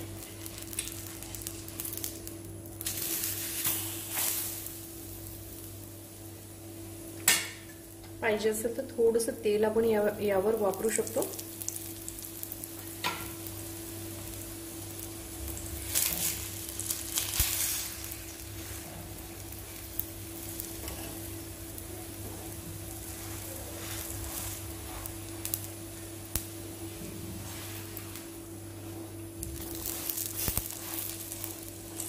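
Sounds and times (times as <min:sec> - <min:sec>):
oil sizzling on griddle: 0:00.0 - 0:08.3, 0:09.8 - 0:32.0.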